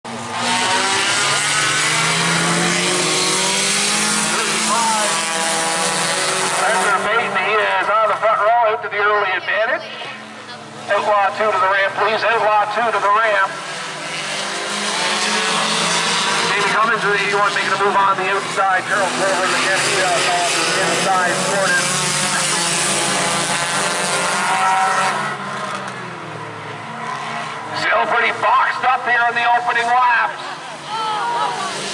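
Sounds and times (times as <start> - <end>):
race car engines roaring: 0.0 - 31.9
man speaking over loudspeaker: 4.3 - 5.5, 6.4 - 10.2, 10.8 - 13.7, 16.4 - 23.3, 24.3 - 25.3, 27.7 - 30.6.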